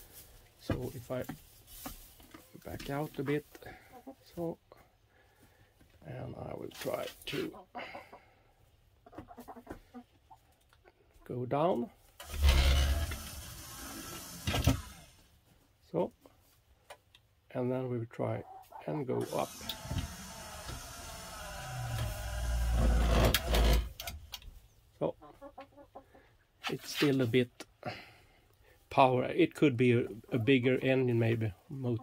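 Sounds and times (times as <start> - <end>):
hens clucking: 2.3 - 4.6, 6.9 - 11.2, 18.2 - 22.2, 25.0 - 26.4, 29.8 - 32.0
electric motor winding door: 12.2 - 15.2, 19.2 - 24.2.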